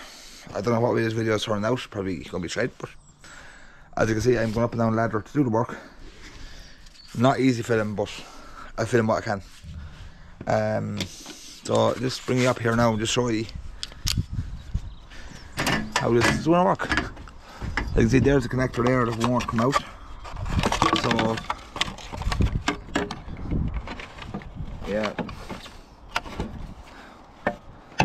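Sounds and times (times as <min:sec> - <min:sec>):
man talking: 0:00.5 - 0:03.0, 0:04.0 - 0:05.9, 0:07.1 - 0:09.5, 0:10.4 - 0:13.6, 0:15.9 - 0:17.1, 0:17.8 - 0:19.9, 0:20.8 - 0:21.5, 0:24.8 - 0:25.4
sharp clicks and knocks of handling: 0:13.5 - 0:14.2.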